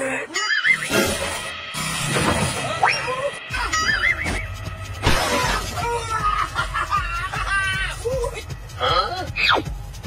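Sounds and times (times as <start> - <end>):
music: 0.0 - 10.0.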